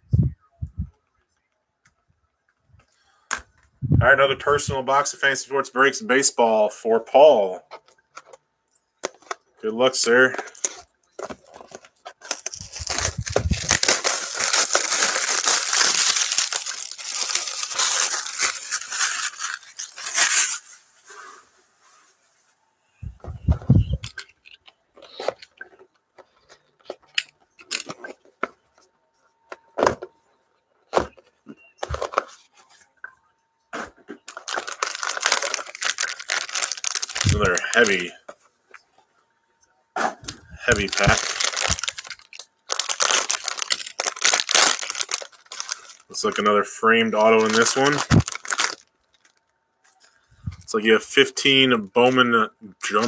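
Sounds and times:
foil pack crinkling: 9.0s - 20.8s, 31.8s - 32.4s, 34.2s - 38.2s, 40.2s - 49.4s
plastic shrink wrap tearing: 11.4s - 20.8s, 34.2s - 38.1s, 40.2s - 46.5s, 47.2s - 49.4s.

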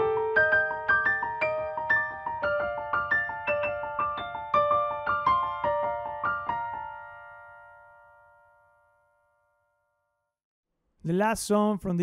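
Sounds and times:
digital piano chord: 0.0s - 10.0s.

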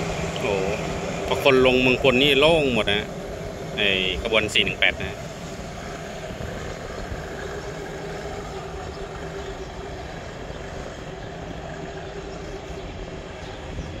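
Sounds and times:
diesel locomotive running: 0.0s - 14.0s.

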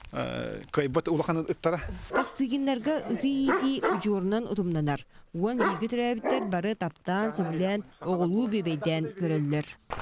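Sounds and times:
dog barking: 2.1s - 2.4s, 3.0s - 4.2s, 5.6s - 6.6s, 7.3s - 7.7s.

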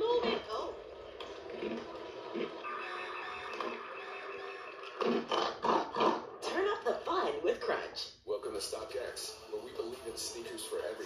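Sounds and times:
commercial music through tv speaker: 0.0s - 11.0s.

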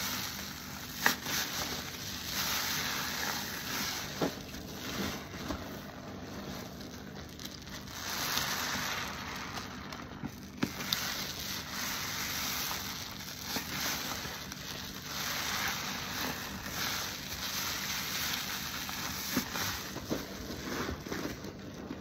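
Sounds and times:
foam sponges squelching: 0.0s - 22.0s.

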